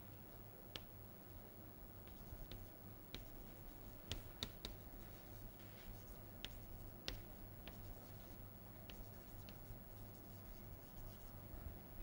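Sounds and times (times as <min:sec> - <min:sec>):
low steady hum: 0:00.0 - 0:12.0
chalk scratching on blackboard: 0:02.1 - 0:11.4.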